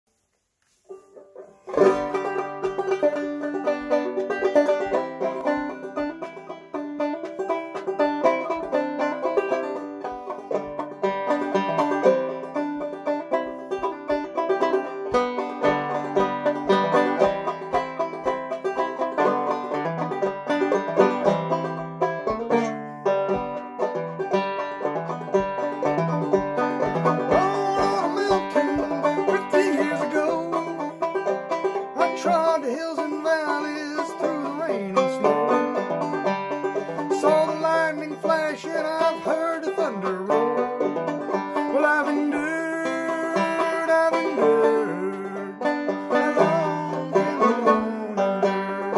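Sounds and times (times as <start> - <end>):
solo banjo picking: 0.6 - 48.9.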